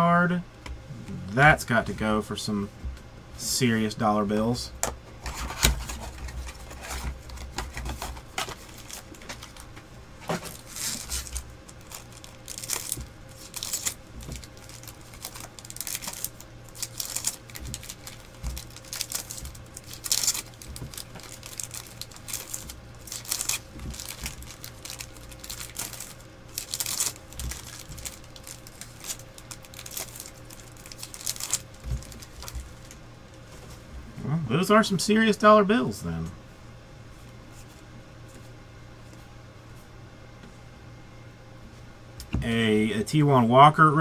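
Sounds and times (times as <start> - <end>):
low steady hum: 0.0 - 44.0
cards being shuffled: 5.2 - 33.0
foil wrappers crinkling: 5.2 - 33.0.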